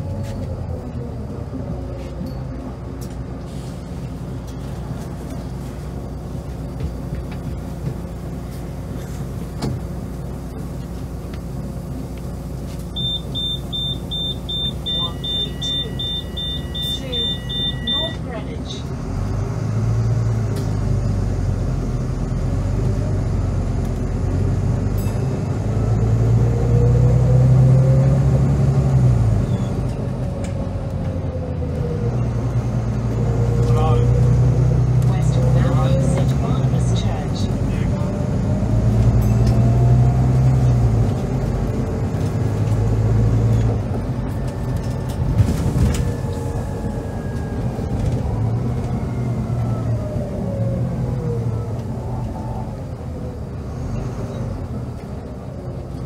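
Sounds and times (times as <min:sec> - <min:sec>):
bus diesel engine accelerating: 0:00.0 - 0:56.0.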